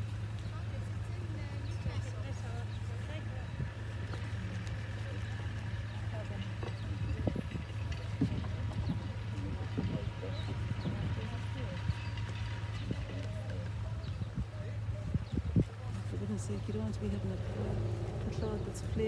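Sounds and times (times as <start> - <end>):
muffled voices mumbling: 0.6 - 19.0.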